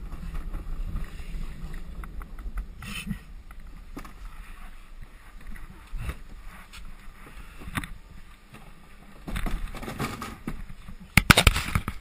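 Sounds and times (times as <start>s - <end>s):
cart wheels rumbling on concrete: 0.0s - 7.4s, 8.6s - 11.0s.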